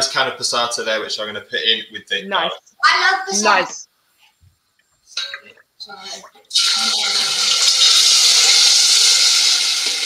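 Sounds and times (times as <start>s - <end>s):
oil sizzling in frying pan: 6.5s - 10.0s.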